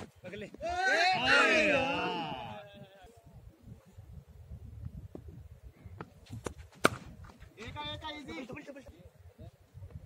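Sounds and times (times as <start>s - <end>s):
men shouting: 0.6s - 3.1s.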